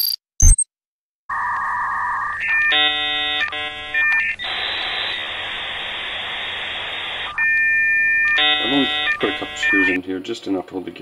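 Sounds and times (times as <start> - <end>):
electronic buzzing tone: 1.3 - 10.0
glitchy noise burst: 4.4 - 7.4.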